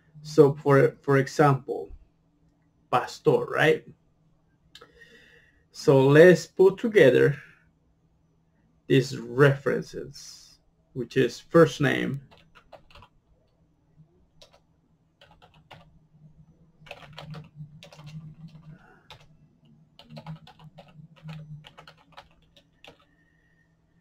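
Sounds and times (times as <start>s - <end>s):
typing on computer keyboard: 12.2s - 13.1s, 14.4s - 14.6s, 15.2s - 15.9s, 16.8s - 19.4s, 20.0s - 23.1s.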